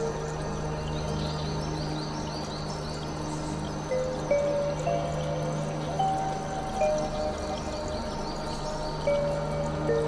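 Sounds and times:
ambient meditation music: 0:00.0 - 0:10.0.

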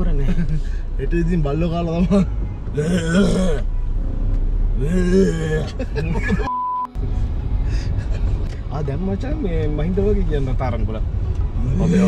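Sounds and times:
man groaning: 0:04.8 - 0:05.8
censor bleep: 0:06.5 - 0:06.9.

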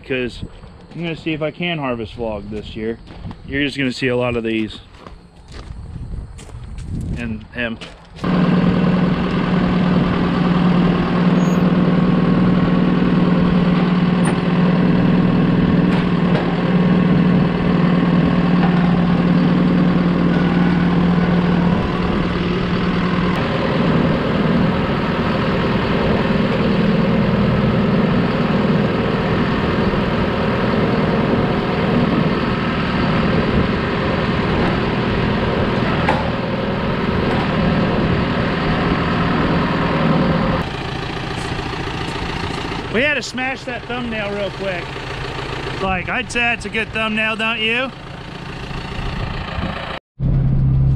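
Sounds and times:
tractor diesel engine running: 0:00.0 - 0:50.9.

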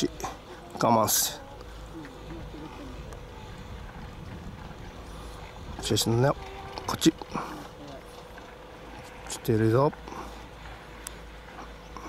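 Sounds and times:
faint distant voice: 0:00.2 - 0:03.7
low wind rumble on microphone: 0:01.5 - 0:08.8.

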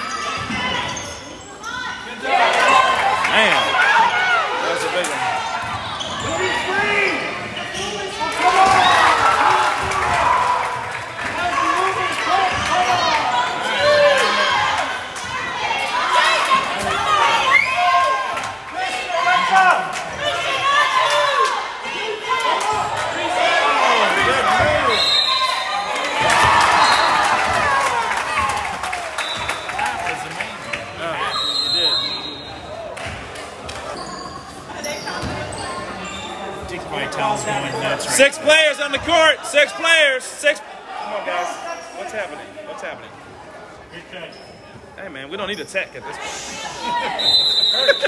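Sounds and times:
people shouting and chattering: 0:00.0 - 0:48.0.

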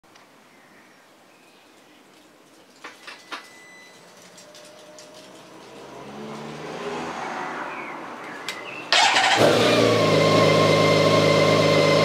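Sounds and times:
motorcycle electrical hum: 0:08.4 - 0:12.0.

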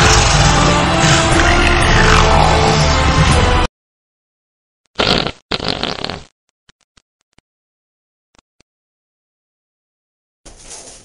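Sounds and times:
farts: 0:05.0 - 0:06.3.

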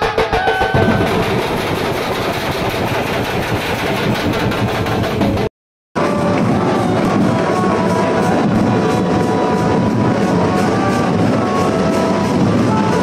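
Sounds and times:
rapid procession drumming: 0:00.0 - 0:13.0.

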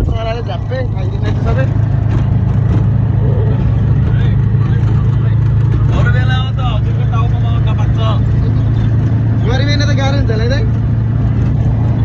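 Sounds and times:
auto-rickshaw engine humming: 0:00.0 - 0:12.0.

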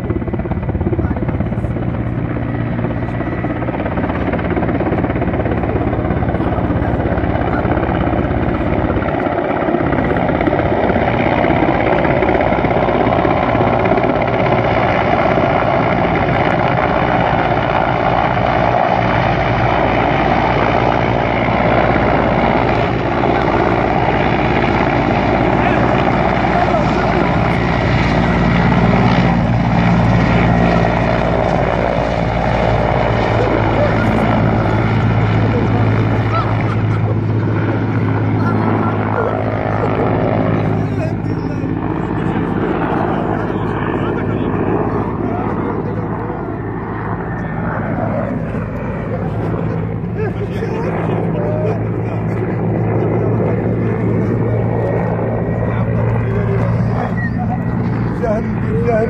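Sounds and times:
helicopter hovering: 0:00.0 - 0:59.0.

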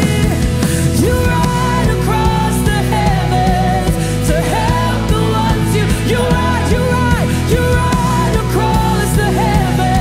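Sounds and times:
worship band playing: 0:00.0 - 0:10.0.

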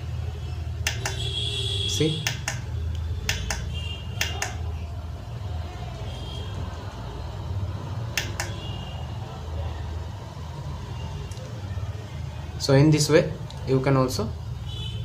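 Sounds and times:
push button clicking: 0:08.2 - 0:08.6.

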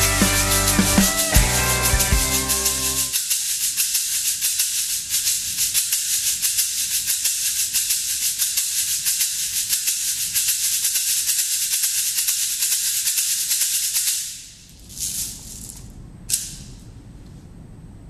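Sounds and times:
shaker bead rattle: 0:00.0 - 0:16.7.

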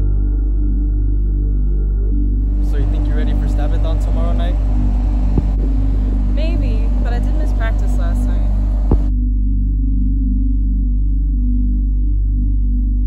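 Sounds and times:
low ambient music drone: 0:00.0 - 0:13.0
people talking: 0:02.6 - 0:04.6, 0:06.3 - 0:09.1
brief thumps: 0:08.8 - 0:09.1.

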